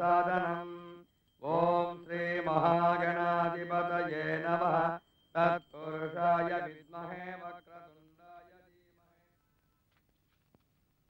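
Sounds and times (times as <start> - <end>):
man chanting: 0.0 - 9.4.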